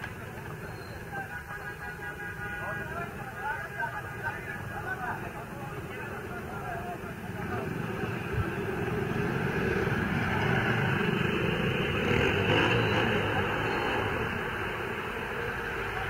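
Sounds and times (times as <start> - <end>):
people talking: 0.0 - 9.3
car engines passing slowly: 0.0 - 16.0.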